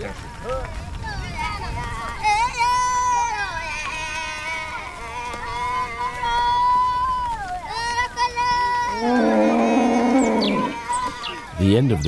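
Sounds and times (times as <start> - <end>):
cow mooing: 9.0 - 10.8.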